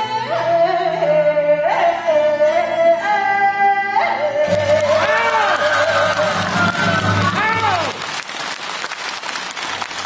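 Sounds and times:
opera singing: 0:00.0 - 0:07.7
opera band accompaniment: 0:00.0 - 0:08.2.

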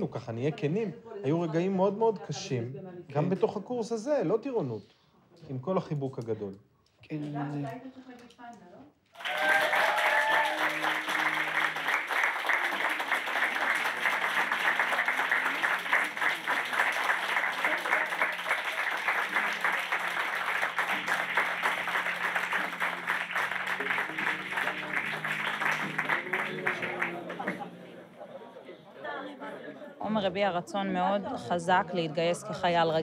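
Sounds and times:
audience applauding: 0:09.2 - 0:28.0
soft music: 0:18.0 - 0:33.0.

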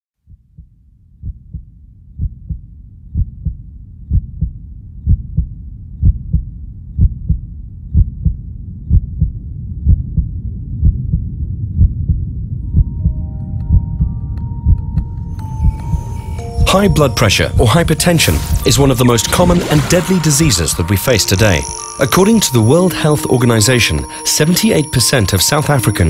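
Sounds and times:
heartbeat thumps: 0:00.2 - 0:18.7
held musical tones: 0:12.7 - 0:26.0.

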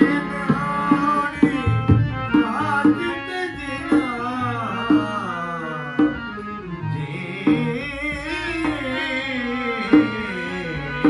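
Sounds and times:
harmonium sustained notes: 0:00.0 - 0:11.0
man singing: 0:00.0 - 0:11.0.

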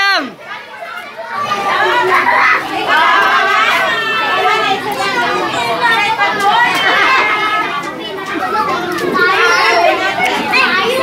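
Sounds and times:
children shouting excitedly: 0:00.0 - 0:11.0
children talking and calling out: 0:00.0 - 0:11.0.

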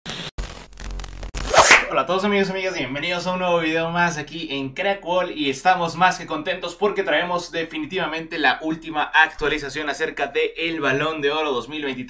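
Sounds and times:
electronic glitch noise: 0:00.1 - 0:02.0
short noisy swoosh: 0:01.4 - 0:02.0.

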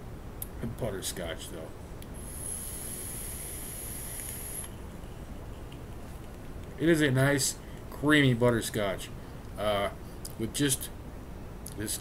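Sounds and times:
vape coil sizzling hiss: 0:02.1 - 0:04.8.

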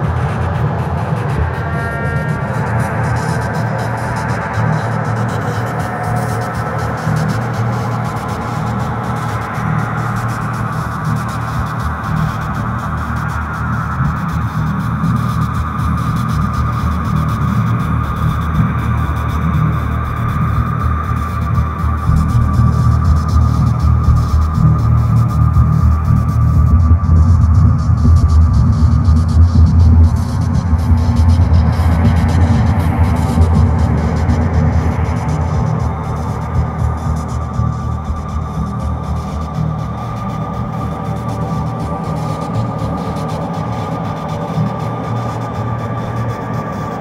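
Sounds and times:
low hum drone: 0:00.0 - 0:47.0.

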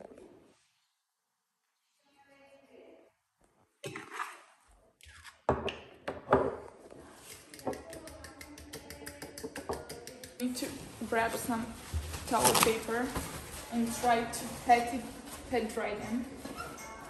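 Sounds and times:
quiet talk: 0:06.9 - 0:10.8.

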